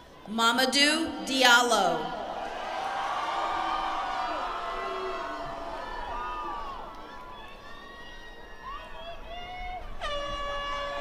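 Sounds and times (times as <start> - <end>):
crowd shouting and cheering: 0.0 - 11.0
air horn blast: 10.0 - 11.0.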